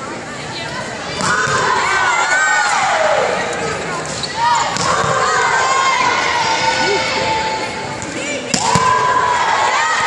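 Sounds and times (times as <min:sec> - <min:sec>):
volleyballs hit and bouncing: 0:01.1 - 0:01.9, 0:03.6 - 0:05.7, 0:07.9 - 0:09.1.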